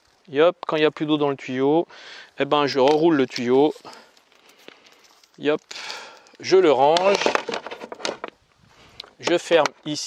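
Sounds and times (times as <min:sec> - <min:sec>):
shower hose rustling: 0:02.6 - 0:08.9.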